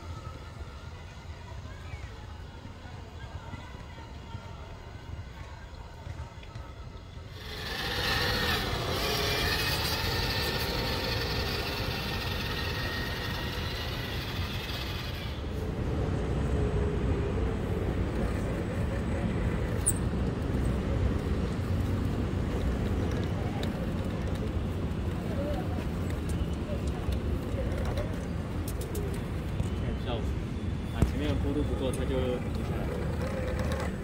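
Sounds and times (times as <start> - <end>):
electric motor and gears whining: 7.3 - 15.5.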